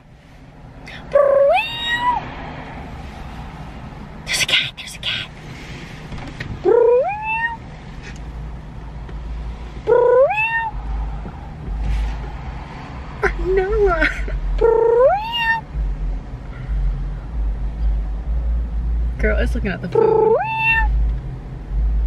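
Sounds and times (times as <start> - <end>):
person imitating cat meows: 6.7 - 7.6, 9.9 - 10.8, 14.6 - 15.6, 20.0 - 20.9.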